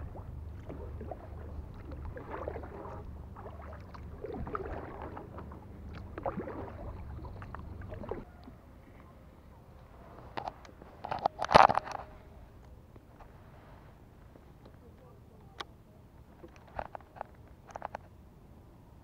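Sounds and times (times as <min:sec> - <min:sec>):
low rumble: 0:00.0 - 0:08.4
paddle strokes swishing through water: 0:00.0 - 0:09.0.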